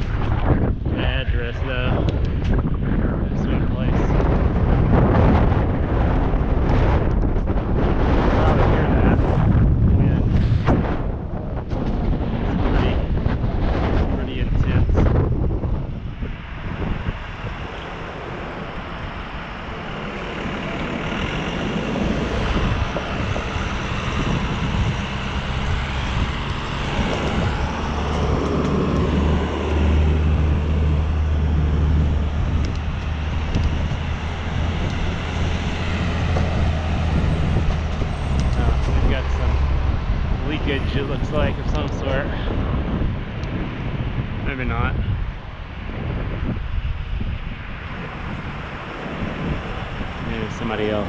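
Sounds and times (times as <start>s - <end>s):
large vehicle engine droning: 0.0s - 51.0s
road traffic: 0.0s - 51.0s
wind buffeting microphone: 0.0s - 51.0s.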